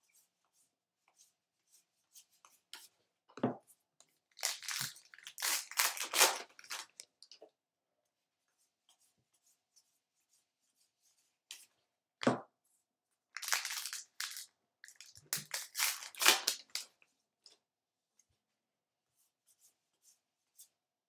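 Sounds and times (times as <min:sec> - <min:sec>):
trading cards rustling and sliding: 0:04.4 - 0:07.0, 0:15.0 - 0:16.9.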